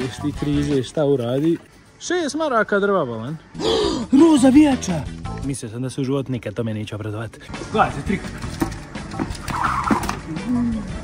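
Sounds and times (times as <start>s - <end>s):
shoes tapping on tiled floor: 8.1s - 10.3s.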